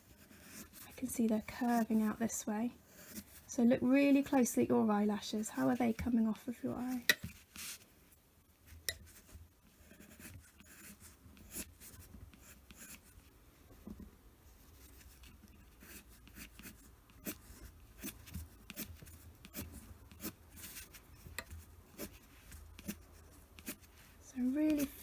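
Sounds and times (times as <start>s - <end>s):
pencil scratching on paper: 0.0s - 2.2s, 9.1s - 13.3s, 14.7s - 25.0s.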